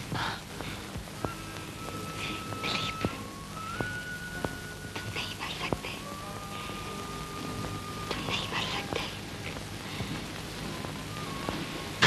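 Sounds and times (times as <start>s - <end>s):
woman whispering: 0.0s - 0.5s, 2.2s - 3.3s, 5.0s - 6.2s, 8.1s - 9.6s
soundtrack hiss: 0.0s - 12.0s.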